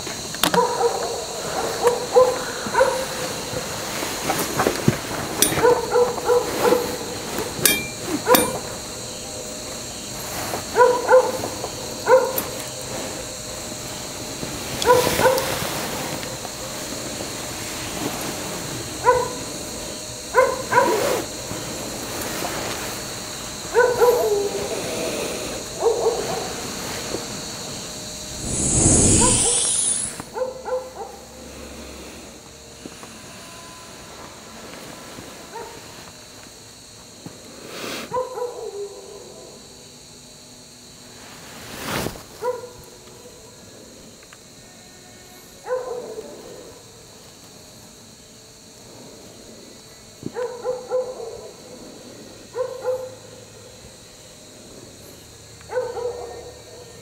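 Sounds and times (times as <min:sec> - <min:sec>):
dog barking: 0:00.5 - 0:03.3, 0:05.4 - 0:07.1, 0:10.7 - 0:12.5, 0:14.8 - 0:15.5, 0:19.0 - 0:19.4, 0:20.3 - 0:21.2, 0:23.7 - 0:24.7, 0:25.8 - 0:26.6, 0:30.4 - 0:31.2, 0:35.5 - 0:35.8, 0:38.1 - 0:39.3, 0:42.4 - 0:42.8, 0:45.6 - 0:46.3, 0:50.3 - 0:51.6, 0:52.5 - 0:53.2, 0:55.7 - 0:56.9
faint high whine: 0:03.6 - 0:10.7, 0:26.6 - 0:30.5
loud whoosh: 0:28.3 - 0:30.2.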